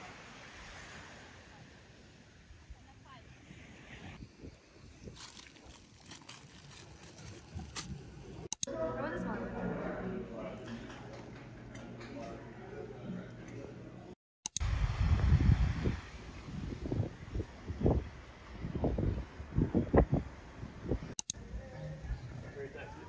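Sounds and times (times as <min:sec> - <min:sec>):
faint outdoor noise: 0:00.0 - 0:23.0
indistinct voices: 0:08.4 - 0:14.2
scattered clicks: 0:08.5 - 0:08.7, 0:21.2 - 0:21.4.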